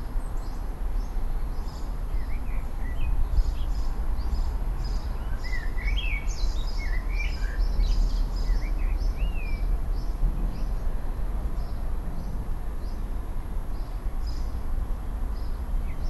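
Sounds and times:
small birds singing: 0:00.1 - 0:14.6, 0:15.3 - 0:16.0
steady low rumble: 0:07.0 - 0:16.0.

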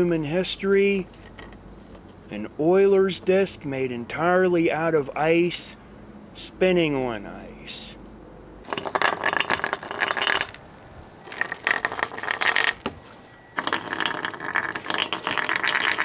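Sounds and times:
ice disc rattling on ice: 0:08.7 - 0:10.6, 0:11.2 - 0:13.0, 0:13.6 - 0:16.0.

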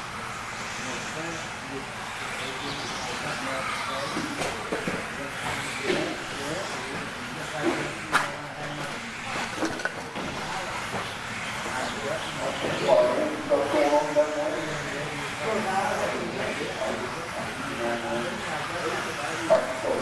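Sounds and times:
rc cars whirring: 0:00.0 - 0:20.0
indistinct voices: 0:00.7 - 0:20.0.

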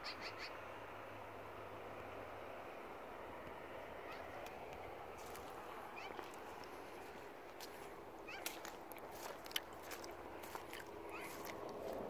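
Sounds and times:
footsteps on icy snow: 0:05.1 - 0:12.0
short high chirping calls: 0:08.2 - 0:08.6.

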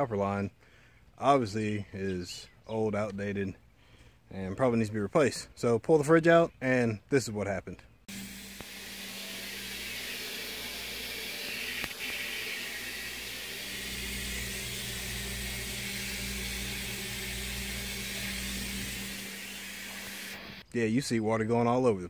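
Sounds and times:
water spraying into plastic buckets: 0:08.1 - 0:20.6.

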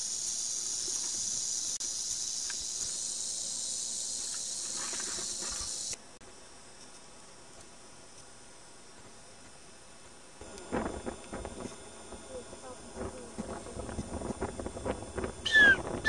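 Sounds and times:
rattlesnake rattling: 0:00.0 - 0:06.0, 0:10.4 - 0:16.0.

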